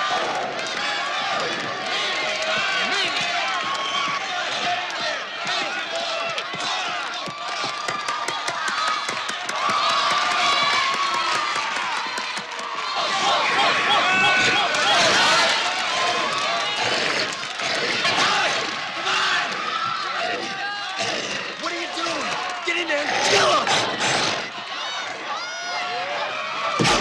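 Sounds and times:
crowd cheering and shouting: 0.0 - 27.0.

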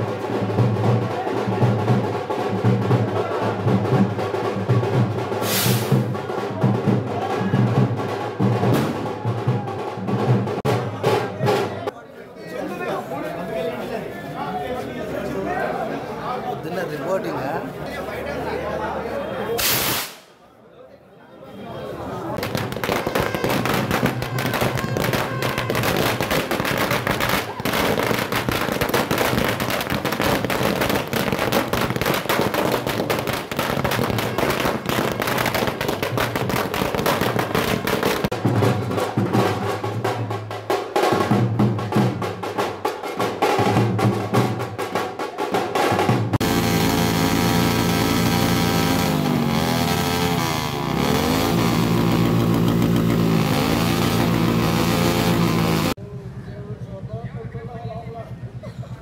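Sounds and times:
drumming: 0.0 - 11.9, 22.4 - 56.0
firecrackers cracking: 19.6 - 20.4, 22.4 - 38.4, 51.2 - 56.0.

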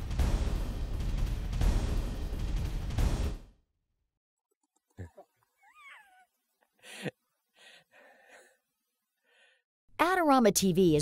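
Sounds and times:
man's squeaky cries and laughter: 5.5 - 6.4.

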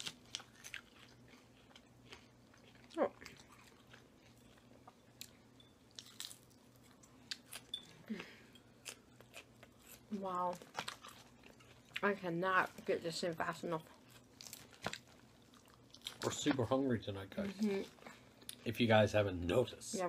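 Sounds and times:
chewing and crunching salad: 0.0 - 18.7.

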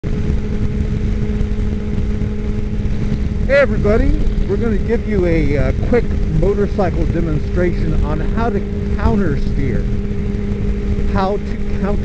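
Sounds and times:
motorcycle engine cruising: 0.0 - 12.0
wind and road noise rumble: 0.0 - 12.0.

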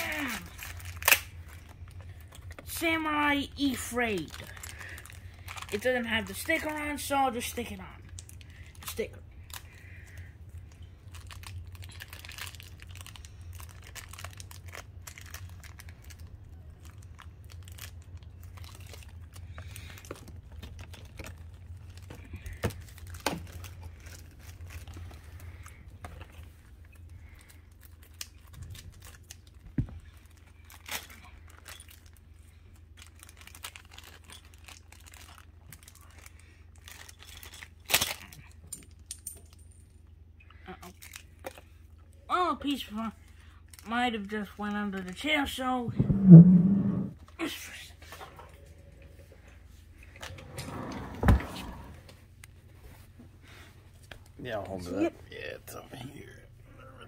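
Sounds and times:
plastic packaging crinkling: 0.0 - 2.6, 3.6 - 6.7, 8.1 - 25.8, 27.2 - 39.0
steady low hum: 0.0 - 57.0.

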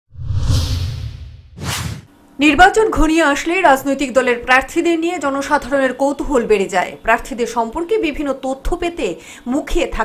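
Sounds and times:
long whoosh with deep rumble: 0.1 - 2.1.

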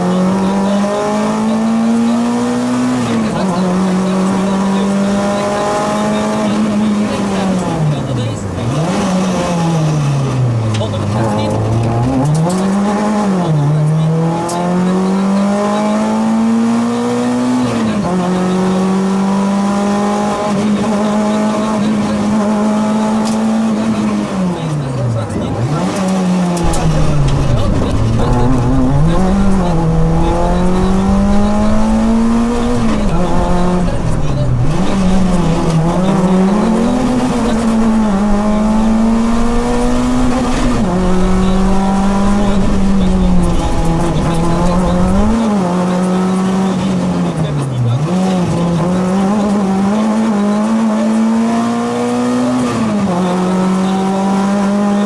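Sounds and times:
car engine revving: 0.0 - 55.0
deep rumble: 26.2 - 45.6.

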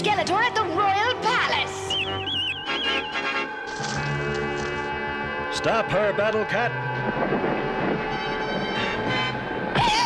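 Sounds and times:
sustained background music: 0.0 - 10.0.

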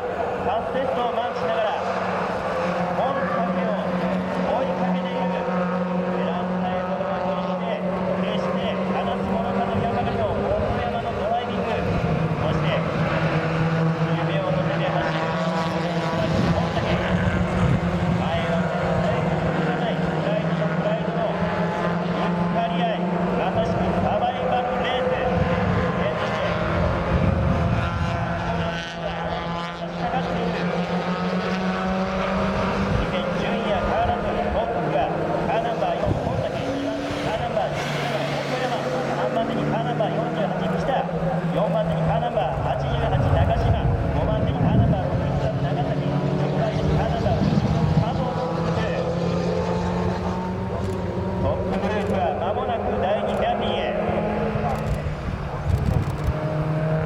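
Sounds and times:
race cars passing: 0.0 - 57.0.

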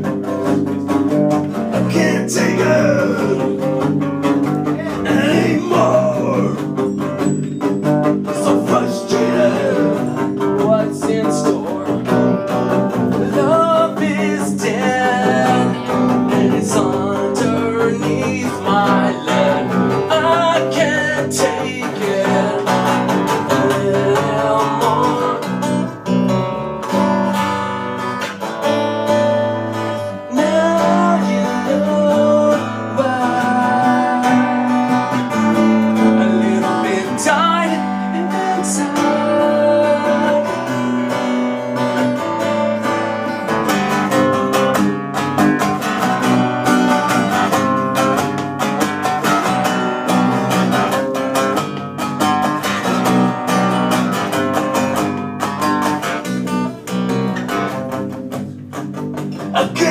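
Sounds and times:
acoustic guitar: 0.0 - 59.9
electric bass: 0.0 - 59.9.

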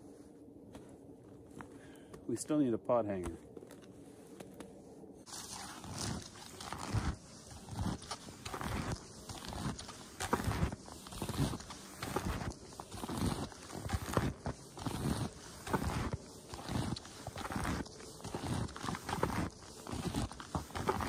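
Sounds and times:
snowshoe footsteps crunching snow: 0.0 - 2.2, 3.1 - 21.0.

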